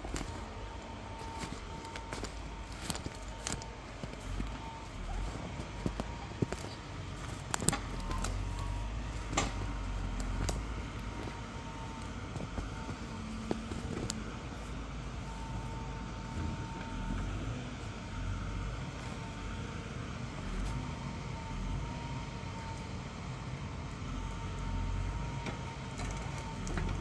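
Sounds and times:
diesel engine droning: 0.0 - 27.0
hydraulic crane whine: 0.0 - 27.0.

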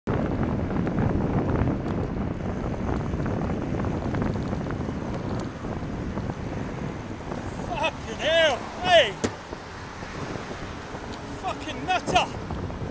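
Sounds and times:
road and traffic noise: 0.1 - 12.9
wind buffeting microphone: 0.1 - 12.9.

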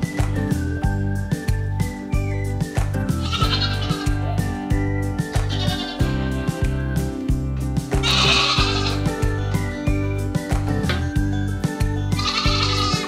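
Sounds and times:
background music with steady beat: 0.0 - 13.0
goat bleating: 3.2 - 4.2, 5.4 - 6.2, 8.0 - 9.1, 12.1 - 13.0.

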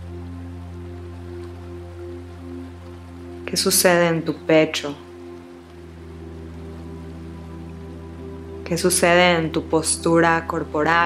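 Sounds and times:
ambient music with low pad tones: 0.0 - 11.0
faint even hiss: 0.0 - 11.0.

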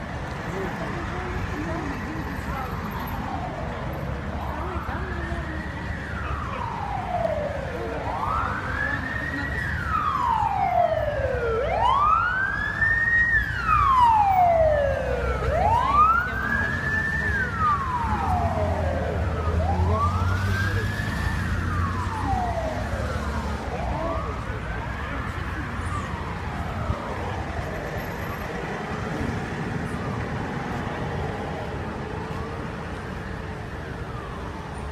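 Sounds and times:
low traffic rumble: 0.0 - 34.9
police siren wailing: 0.0 - 34.9
fainter second siren: 1.9 - 34.9.

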